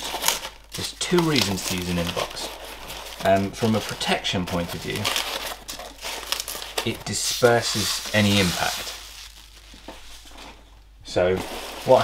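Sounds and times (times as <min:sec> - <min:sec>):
packing peanuts rustling: 0:00.0 - 0:12.0.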